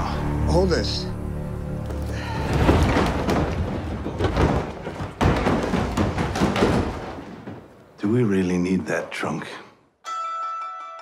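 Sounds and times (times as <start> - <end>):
trunk tumbling down stairs: 2.3 - 7.9.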